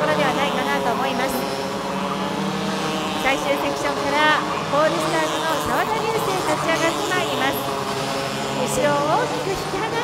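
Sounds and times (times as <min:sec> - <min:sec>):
racing kart engines buzzing: 0:00.0 - 0:10.0.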